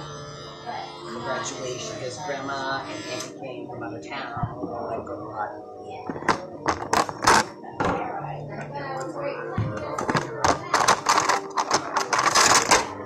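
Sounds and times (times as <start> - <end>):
tools clicking and knocking on counter: 9.7 - 12.9.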